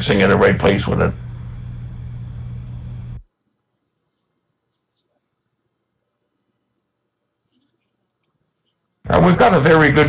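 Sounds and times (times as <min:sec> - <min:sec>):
microphone hum and hiss: 0:00.0 - 0:03.3.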